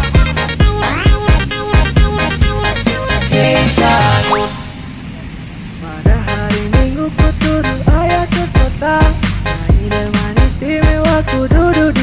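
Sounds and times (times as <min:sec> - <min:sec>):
background music beat: 0:00.0 - 0:04.8, 0:06.1 - 0:12.0
rising whistle boing effect: 0:04.1 - 0:05.0.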